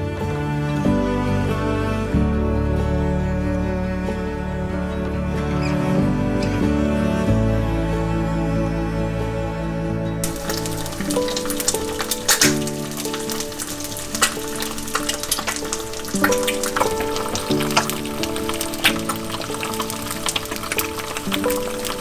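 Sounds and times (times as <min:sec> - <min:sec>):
music with slow held notes: 0:00.0 - 0:22.0
egg sizzling in a pan: 0:10.2 - 0:22.0.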